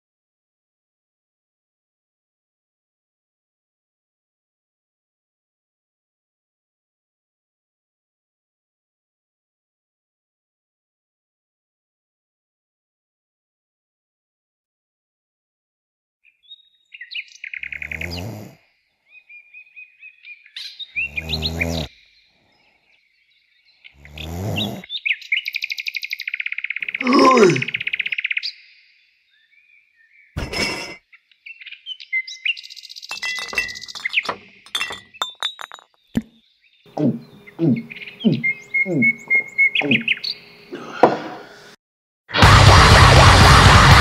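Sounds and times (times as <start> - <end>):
birds chirping and trilling: 16.2 - 41.8
man shouting: 27.0 - 27.8
clinks and clicks: 33.1 - 36.3
man's low voice: 37.0 - 39.2.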